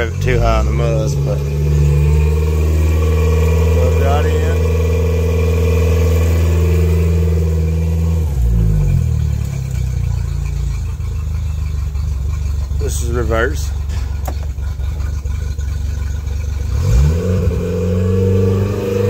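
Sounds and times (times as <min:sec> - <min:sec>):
outboard motor running: 0:00.0 - 0:18.6.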